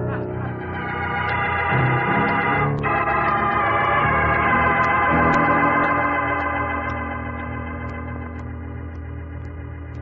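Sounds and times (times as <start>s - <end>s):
sustained organ chords: 0.0s - 10.0s.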